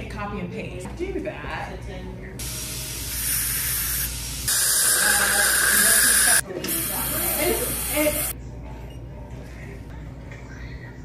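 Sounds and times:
air syringe hissing: 2.4 - 8.3.

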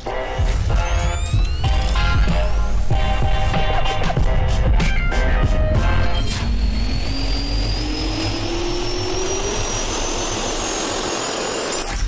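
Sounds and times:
jet engine spooling up: 0.4 - 12.0.

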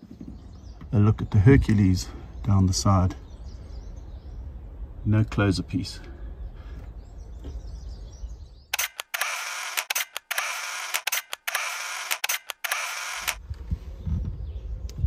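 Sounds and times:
camera shutter clicks: 8.8 - 13.4.

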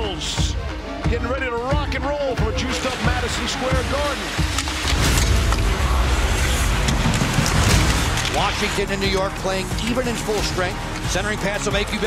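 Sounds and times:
arena crowd din: 0.0 - 12.0.

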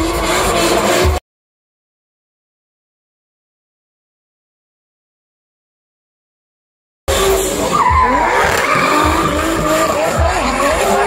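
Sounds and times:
car engine revving: 0.0 - 1.2, 7.1 - 11.0
tyre squeal: 7.2 - 11.0.

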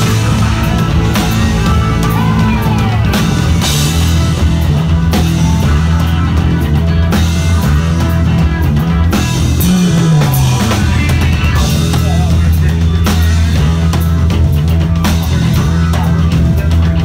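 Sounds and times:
drum kit: 0.0 - 17.0
electric bass line: 0.0 - 17.0
punk rock band playing: 0.0 - 17.0.

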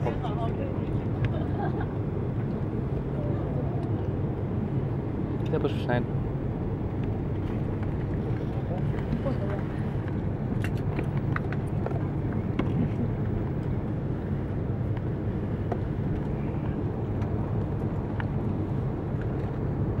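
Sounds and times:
aircraft cabin rumble: 0.0 - 20.0.

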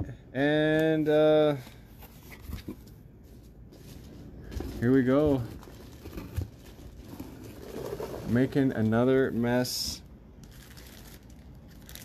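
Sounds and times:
packing rustling: 3.4 - 9.1.

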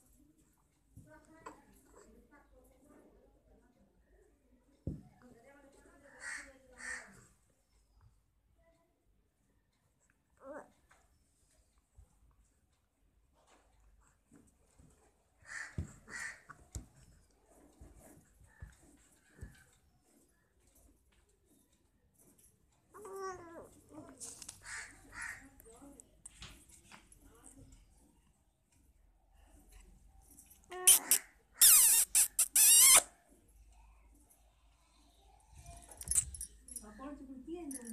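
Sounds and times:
baby cooing: 23.0 - 23.7
short harsh calls: 30.8 - 33.1.

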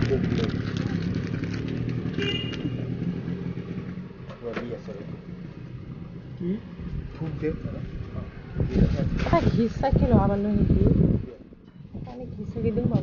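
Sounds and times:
motor engine running: 0.0 - 8.8.

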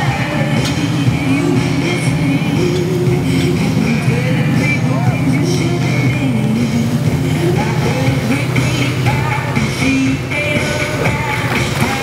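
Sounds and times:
boat engine running: 0.0 - 12.0
music with singing: 0.0 - 12.0.

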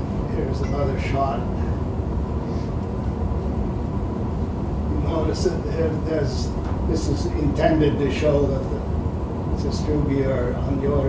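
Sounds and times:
ventilation rumble: 0.0 - 11.0.

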